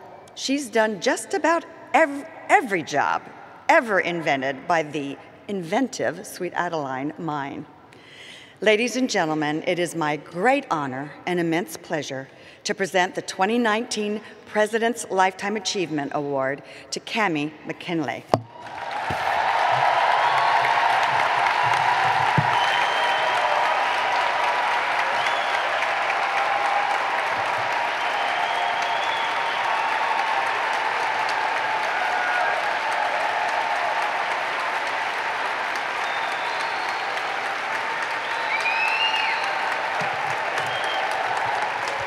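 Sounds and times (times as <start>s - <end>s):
arena audience applauding: 18.5s - 42.0s.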